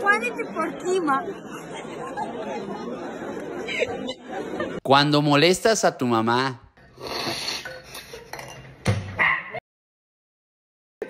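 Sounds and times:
metal spoon clinking on dishes: 0:07.6 - 0:08.8.

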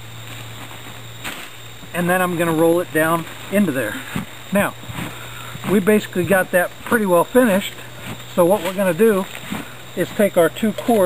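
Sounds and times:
low hum and hiss: 0:00.0 - 0:11.0
blanket rustle: 0:00.1 - 0:11.0
blanket being folded and smoothed: 0:02.2 - 0:10.4.

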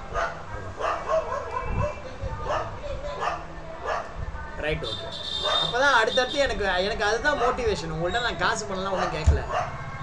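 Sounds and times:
dog barking: 0:00.0 - 0:04.1, 0:05.4 - 0:05.8, 0:08.9 - 0:09.8.

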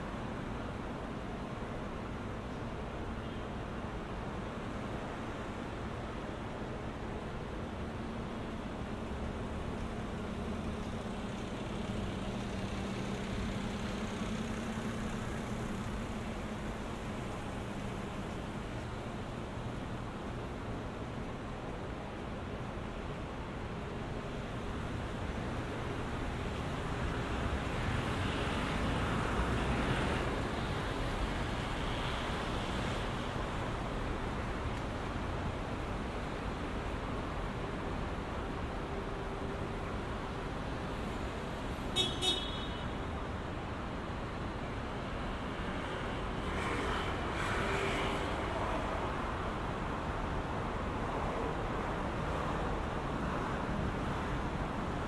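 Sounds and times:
cars passing: 0:26.2 - 0:36.6.

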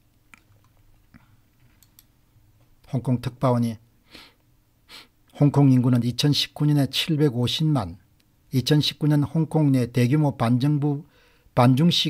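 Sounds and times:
computer mouse clicks: 0:01.6 - 0:02.1
man speaking: 0:02.9 - 0:03.8, 0:05.3 - 0:12.0.

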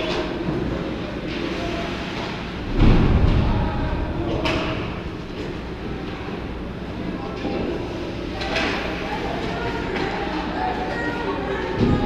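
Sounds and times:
distant echoing voices: 0:00.0 - 0:12.0
steady low rumble: 0:02.5 - 0:07.1
loud low thud: 0:02.6 - 0:05.4.

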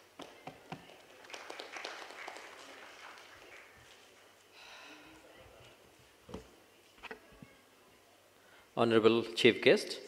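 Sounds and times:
light audience clapping: 0:00.2 - 0:04.3.

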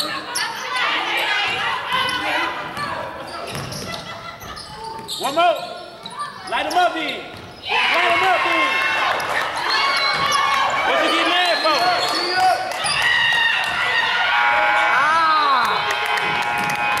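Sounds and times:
basketball bouncing: 0:01.4 - 0:04.1, 0:07.3 - 0:07.6
shoes squeaking on wooden floor: 0:01.5 - 0:07.7.

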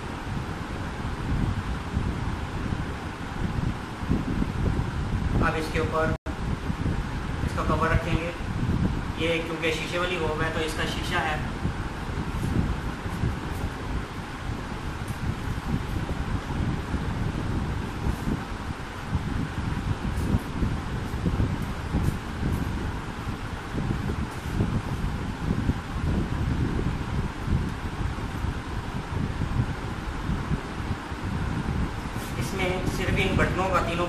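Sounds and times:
wind rumble on microphone: 0:00.0 - 0:34.0.

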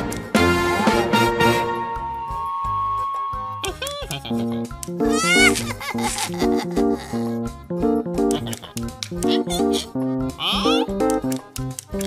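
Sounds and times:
bouncy plucked cartoon music: 0:00.0 - 0:02.0, 0:03.5 - 0:12.0
wavering cartoon animal call: 0:05.1 - 0:07.3.

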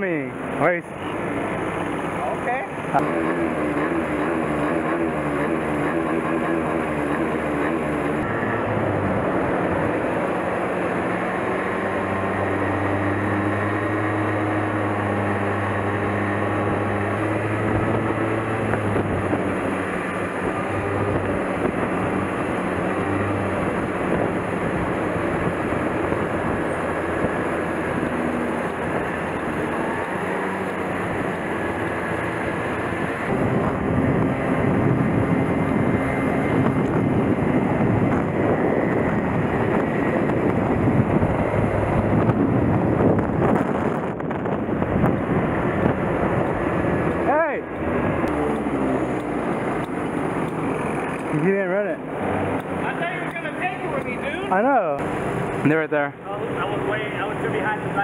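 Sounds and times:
go-kart engine running: 0:00.0 - 0:58.0
road noise: 0:00.0 - 0:58.0
wind on microphone: 0:08.1 - 0:51.3.

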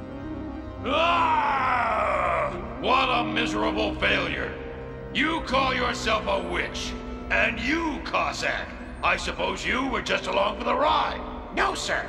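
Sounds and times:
dramatic background music: 0:00.0 - 0:12.0
man groaning angrily: 0:00.8 - 0:02.8.

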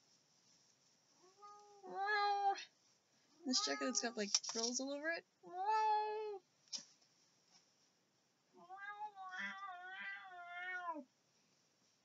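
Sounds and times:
cat meowing: 0:03.5 - 0:04.2, 0:08.6 - 0:11.1.

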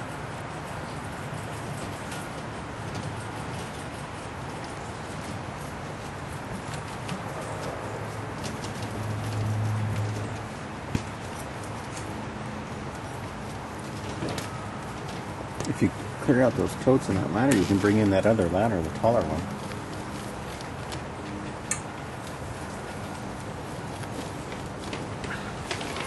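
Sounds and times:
light clicks and rustles: 0:00.0 - 0:26.0
steady background noise: 0:00.0 - 0:26.0.

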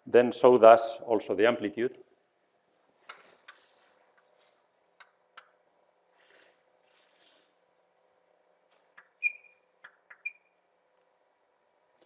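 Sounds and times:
chalk tapping and scraping: 0:03.0 - 0:05.7, 0:08.8 - 0:10.3
chalk squeaking on blackboard: 0:09.0 - 0:10.4.

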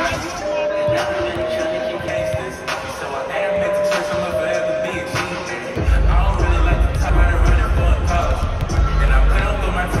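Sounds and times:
basketballs bouncing on hardwood: 0:00.9 - 0:02.5, 0:06.8 - 0:09.0
loud bass-heavy music: 0:05.7 - 0:10.0.

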